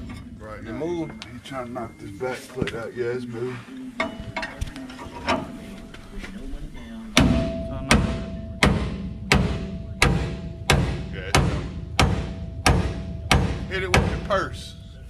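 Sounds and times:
hammer striking steel bar: 7.2 - 14.3.

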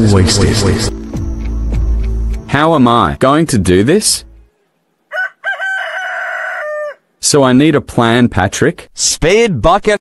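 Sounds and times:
rooster crowing: 5.1 - 7.1.

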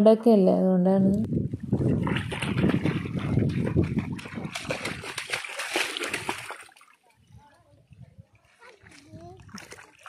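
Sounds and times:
feet splashing in shallow water: 1.6 - 7.2, 8.4 - 10.0.

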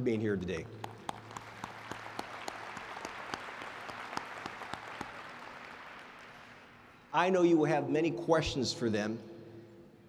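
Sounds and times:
audience applauding: 0.8 - 7.0.

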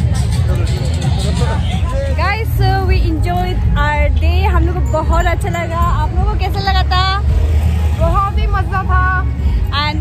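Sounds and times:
women talking: 2.2 - 7.3, 8.0 - 10.0.

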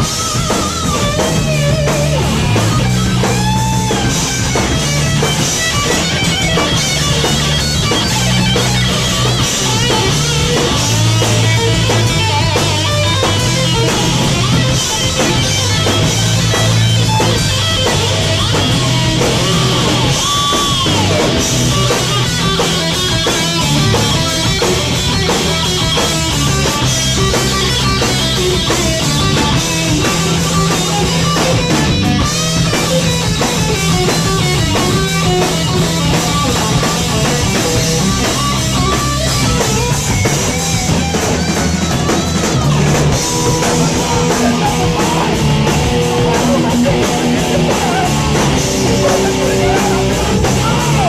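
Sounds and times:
bass: 0.0 - 51.0
drum kit: 0.0 - 51.0
electric guitar lead: 0.0 - 51.0
heavy metal band playing: 0.0 - 51.0.

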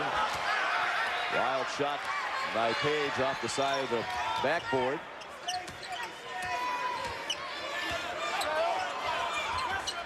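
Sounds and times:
murmur of arena crowd: 0.0 - 10.0
sneakers squeaking: 5.2 - 6.2, 7.0 - 10.0.

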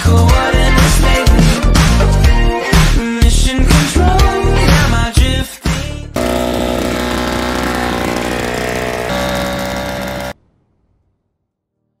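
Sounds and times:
garden blower running: 6.2 - 10.4.

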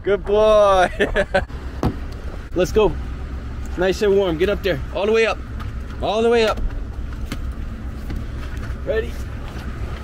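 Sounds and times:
truck engine idling: 0.0 - 10.0
light knocks in truck cab: 1.8 - 2.1.

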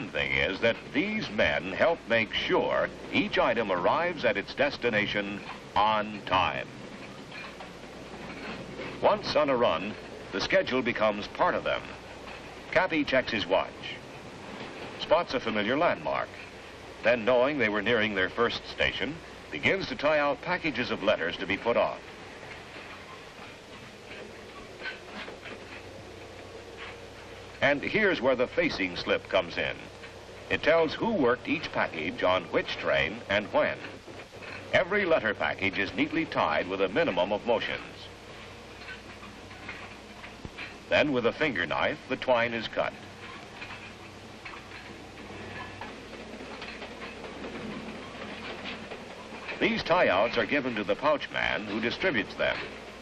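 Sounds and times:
moving train running noise: 0.0 - 53.0.

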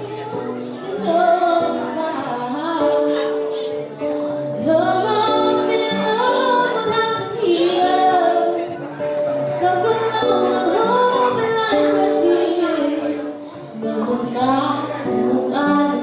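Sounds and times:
amplified acoustic guitar: 0.0 - 16.0
girl singing into microphone: 0.0 - 16.0.

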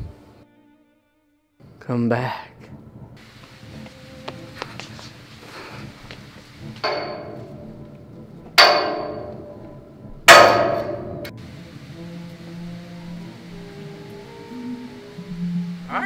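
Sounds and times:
loud ringing clangs: 6.8 - 7.6, 8.6 - 9.6, 10.3 - 11.3
soft held music notes: 11.2 - 16.0.

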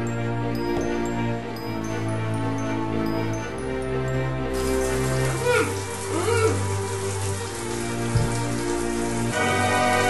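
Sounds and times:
running water hiss: 4.4 - 10.0.

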